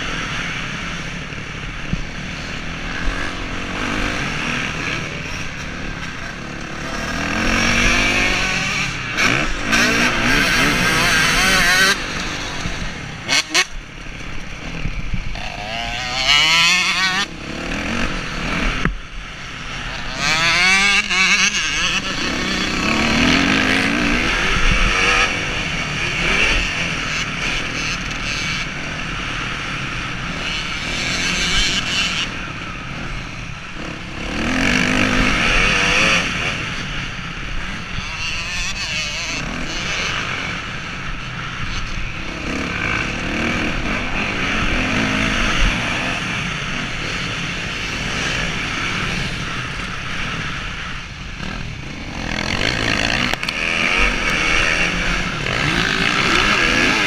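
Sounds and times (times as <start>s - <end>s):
motocross bike engine revving: 0.0s - 57.0s
wind noise on microphone: 20.2s - 26.8s.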